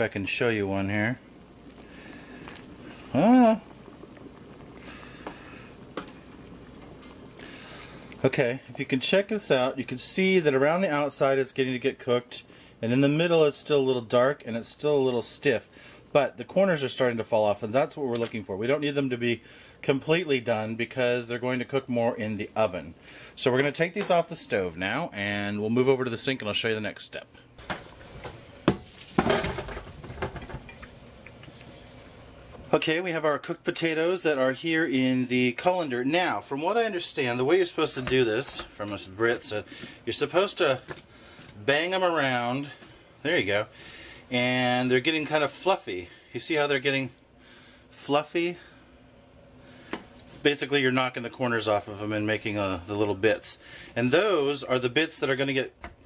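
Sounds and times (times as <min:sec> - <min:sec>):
water boiling and bubbling: 0:00.0 - 0:25.1, 0:27.5 - 0:32.8, 0:34.9 - 0:46.4
water splashing and draining: 0:28.7 - 0:29.3.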